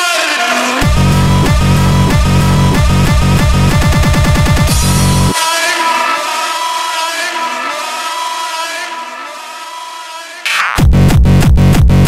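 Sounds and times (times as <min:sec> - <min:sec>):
distorted high synth chord: 0:00.0 - 0:10.8.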